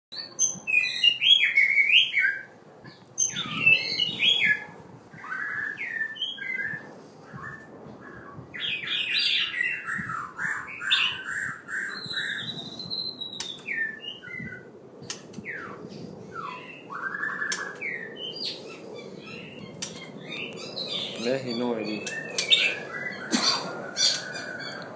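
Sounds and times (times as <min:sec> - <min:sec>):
bird singing whistled phrases: 0:03.2 - 0:04.6, 0:05.2 - 0:14.6, 0:15.5 - 0:18.6, 0:19.2 - 0:23.3
sharp bird clicks: 0:15.0 - 0:15.4, 0:17.4 - 0:17.8.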